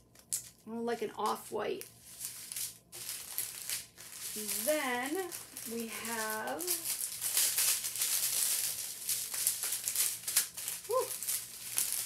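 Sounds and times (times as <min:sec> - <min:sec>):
tiny beads rattling inside bags: 0:00.1 - 0:12.0
plastic bags crinkling: 0:01.2 - 0:12.0.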